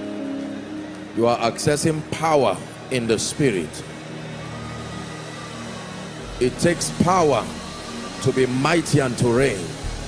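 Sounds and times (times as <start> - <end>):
soft sustained chord music: 0.0 - 10.0.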